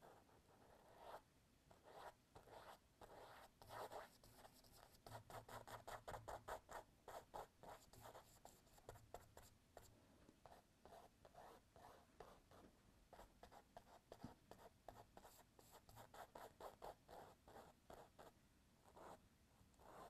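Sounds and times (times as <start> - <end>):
paintbrush scratching on wall: 0.0 - 20.0.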